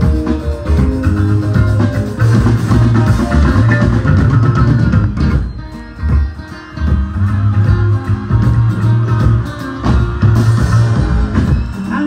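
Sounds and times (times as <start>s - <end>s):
bass guitar: 0.0s - 12.0s
drums: 0.0s - 12.0s
plucked guitar: 0.0s - 12.0s.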